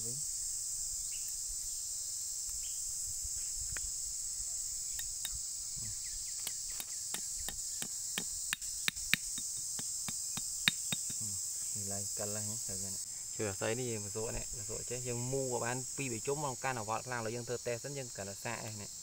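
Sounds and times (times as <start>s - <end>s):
high insect chirring: 0.0s - 19.0s
hatchet tapping on wire: 6.4s - 11.2s.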